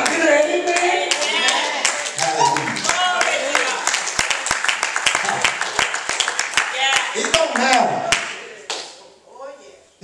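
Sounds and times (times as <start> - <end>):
congregation clapping: 0.0 - 9.0.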